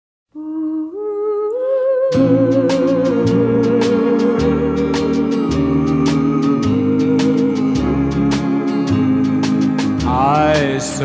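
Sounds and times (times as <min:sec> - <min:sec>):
person humming held notes: 0:00.4 - 0:11.0.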